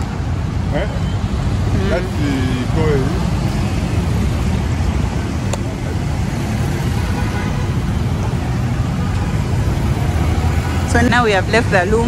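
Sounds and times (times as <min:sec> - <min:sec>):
cars passing: 0:00.0 - 0:12.0
traffic rumble: 0:00.0 - 0:12.0.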